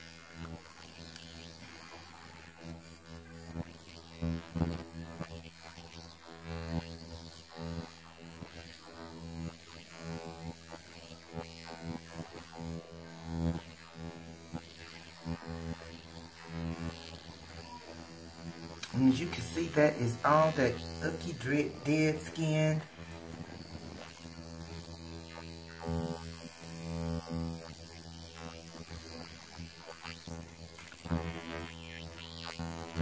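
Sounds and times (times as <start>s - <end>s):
electric hum of skin scrubber: 0.0s - 33.0s.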